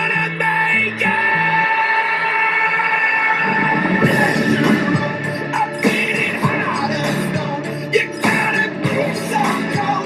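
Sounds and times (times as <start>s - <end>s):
pop song: 0.0s - 10.0s.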